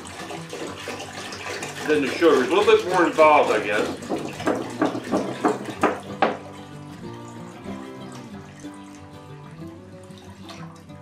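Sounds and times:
water pouring into a metal pot: 0.0 - 11.0.

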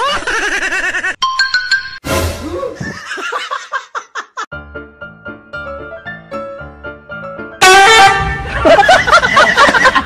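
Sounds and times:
light piano music: 4.5 - 8.8
loud horn blast: 7.6 - 8.6
high snickering laughter: 8.4 - 10.0.

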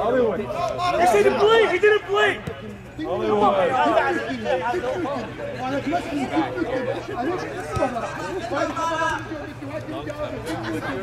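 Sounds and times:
men chatting: 0.0 - 11.0
soccer ball being kicked: 2.4 - 2.6.

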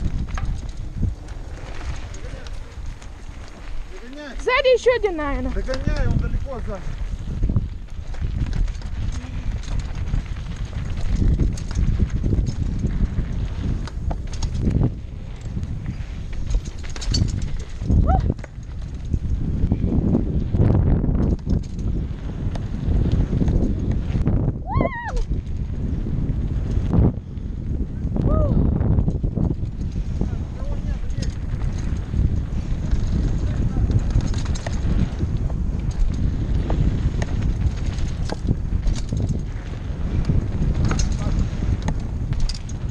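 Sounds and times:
mountain bike rattling: 0.0 - 42.9
wind buffeting microphone: 0.0 - 42.9.

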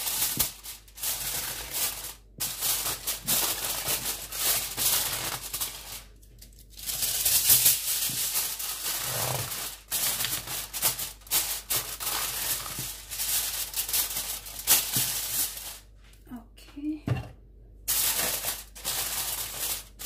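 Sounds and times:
aluminium foil crinkling: 0.0 - 16.0, 17.9 - 20.0.

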